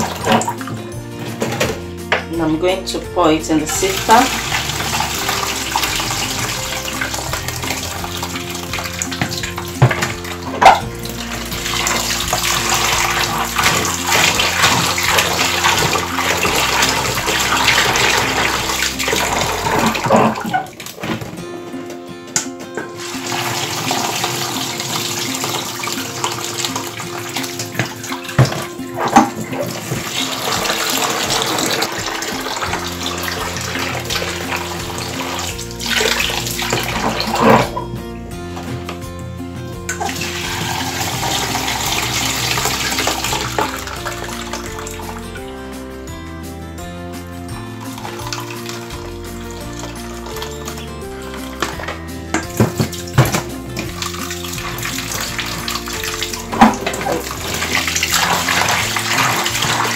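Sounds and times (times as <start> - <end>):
tap water splashing into bowl: 22.4 - 37.8, 51.5 - 59.9
hands swishing beans in water: 23.0 - 37.7, 52.9 - 59.9.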